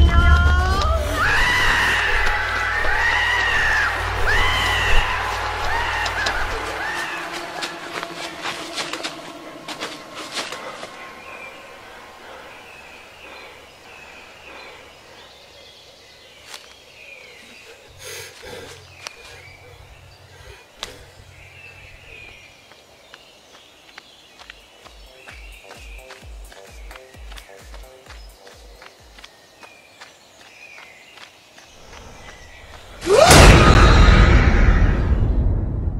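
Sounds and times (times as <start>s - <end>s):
high-pitched arching cries: 0.0s - 7.8s
deep rumble: 33.3s - 35.9s.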